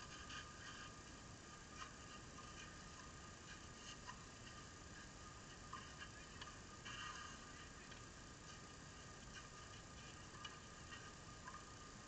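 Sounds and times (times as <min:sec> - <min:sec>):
faint background hiss: 0:00.0 - 0:12.0
soft ticks: 0:00.0 - 0:12.0.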